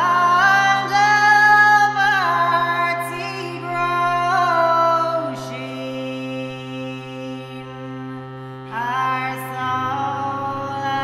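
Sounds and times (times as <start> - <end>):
harmonium drone chord: 0.0 - 11.0.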